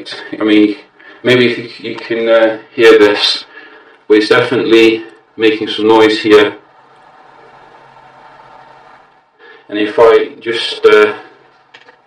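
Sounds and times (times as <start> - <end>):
laptop cooling fan hissing: 5.2 - 9.9.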